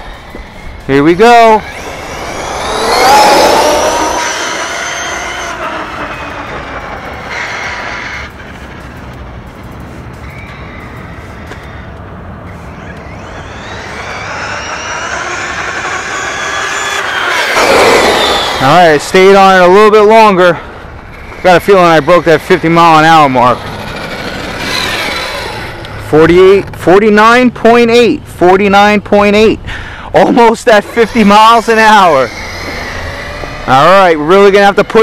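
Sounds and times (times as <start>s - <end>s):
electric motor whining: 0.0s - 26.1s, 30.4s - 35.0s.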